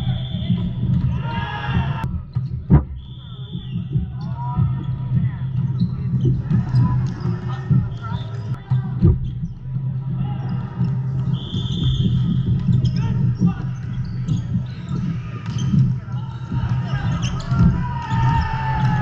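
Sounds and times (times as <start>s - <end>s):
players' voices and calls: 0.0s - 19.0s
volleyballs bouncing and struck: 10.4s - 19.0s.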